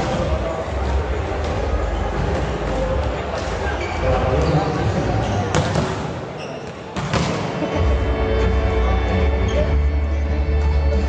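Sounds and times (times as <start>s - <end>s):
crowd murmur: 0.0s - 11.0s
volleyball hits: 5.5s - 6.2s, 6.9s - 7.6s.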